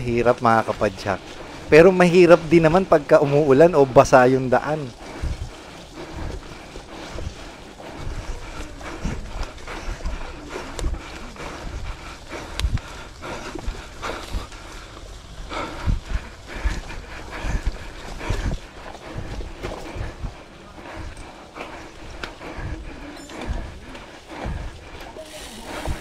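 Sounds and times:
rushing of tyres and wind: 0.0 - 26.0.

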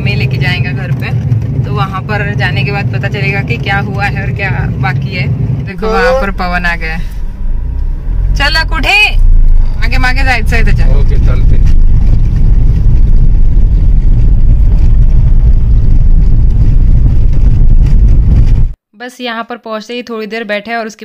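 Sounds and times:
car interior rumble: 0.0 - 18.8
person speaking: 5.7 - 7.2.

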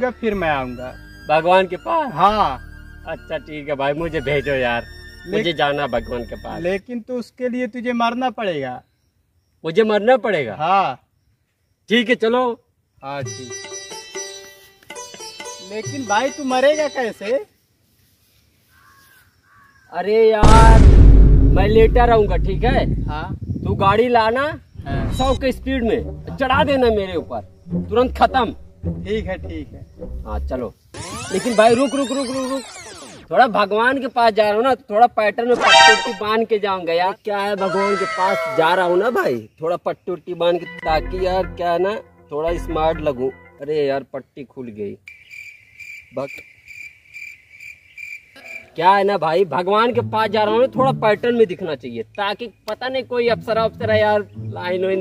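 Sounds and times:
cricket chirping: 4.2 - 17.7, 18.7 - 19.9, 22.8 - 33.7, 45.0 - 48.8
faint crow caws: 18.6 - 20.0, 37.6 - 39.1, 45.3 - 48.8.

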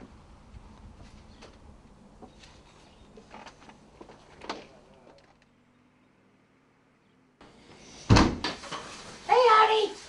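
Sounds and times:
door shutting thump: 8.1 - 8.6.

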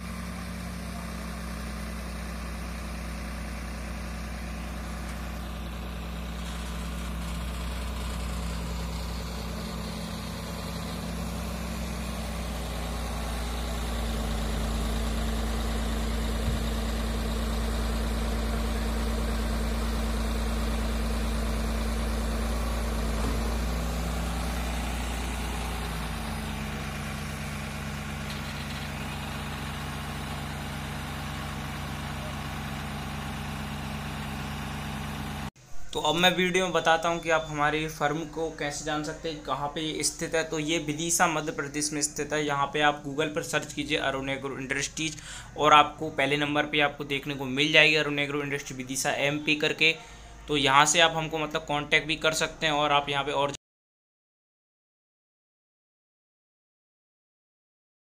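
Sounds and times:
tractor diesel engine running: 0.0 - 52.8.

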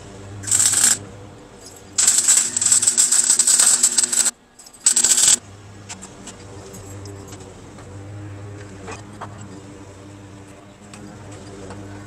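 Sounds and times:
crackling welding arc: 0.4 - 1.0, 2.0 - 5.4.

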